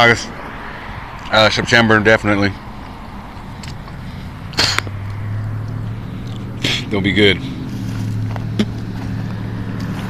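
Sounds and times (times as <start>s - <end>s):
sharp crack: 4.5s - 5.1s.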